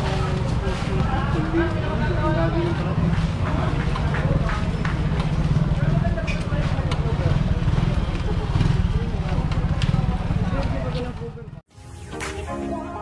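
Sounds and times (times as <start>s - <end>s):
people talking: 0.0s - 11.6s.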